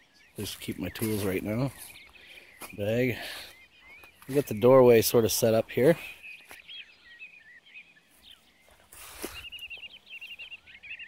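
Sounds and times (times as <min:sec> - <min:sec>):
songbird singing: 0:00.0 - 0:11.0.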